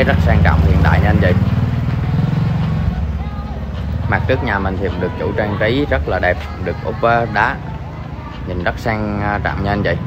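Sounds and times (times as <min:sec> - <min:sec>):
engine running at low speed: 0:00.0 - 0:06.0.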